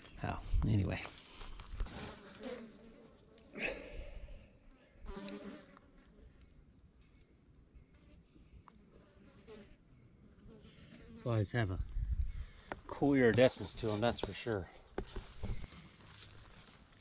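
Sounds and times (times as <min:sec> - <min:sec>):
flying insect buzzing: 0:01.8 - 0:06.5, 0:07.8 - 0:11.2.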